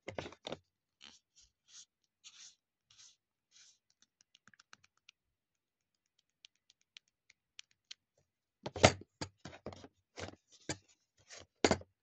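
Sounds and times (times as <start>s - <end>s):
soft scratching on plastic: 1.0s - 4.1s.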